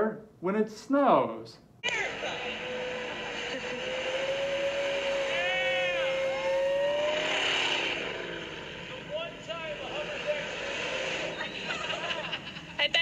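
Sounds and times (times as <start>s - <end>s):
rising and falling whine: 1.8s - 12.6s
engine droning at high revs: 1.9s - 12.5s.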